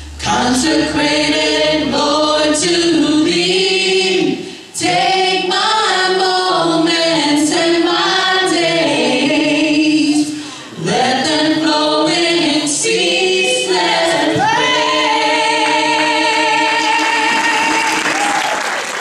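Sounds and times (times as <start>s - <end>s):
low steady hum: 0.0s - 5.9s
choir singing in harmony: 0.0s - 18.2s.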